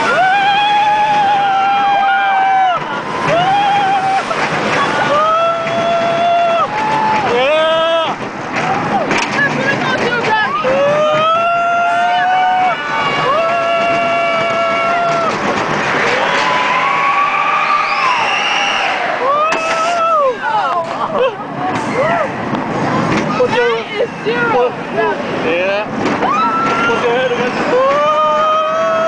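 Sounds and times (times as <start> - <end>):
riders screaming and whooping: 0.0 - 9.2, 10.2 - 22.4, 26.1 - 29.0
roller coaster train on track: 0.0 - 29.0.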